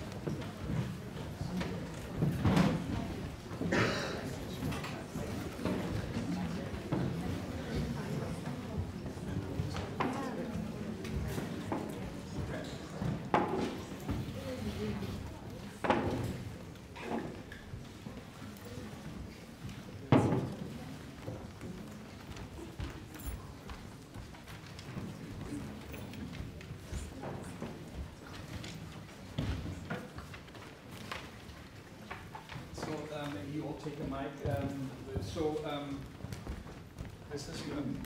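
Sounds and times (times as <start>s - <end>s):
footsteps on stage floor: 0.0s - 38.0s
murmur of voices: 0.0s - 38.0s
chairs knocking on floor: 13.0s - 14.4s, 20.1s - 20.8s.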